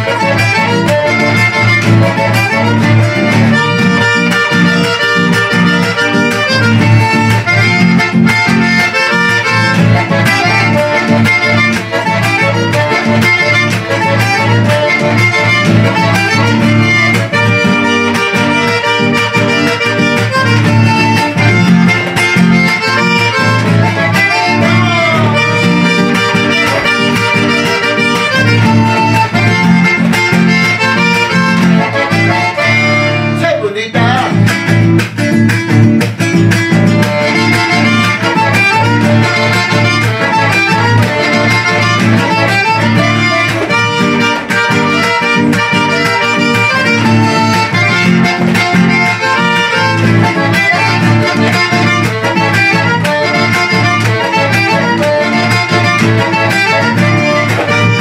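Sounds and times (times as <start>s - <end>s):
button accordion: 0.0s - 58.0s
strummed classical guitar: 0.0s - 58.0s.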